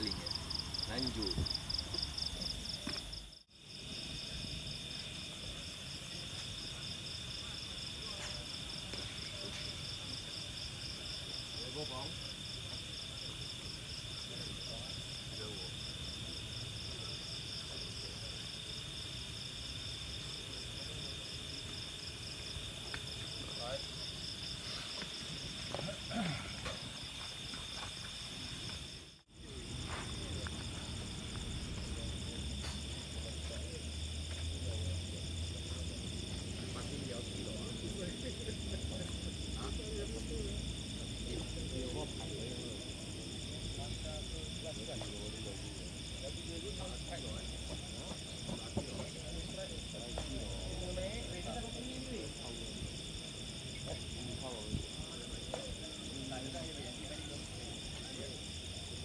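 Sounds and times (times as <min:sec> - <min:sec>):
night insects trilling: 0:00.0 - 0:59.0.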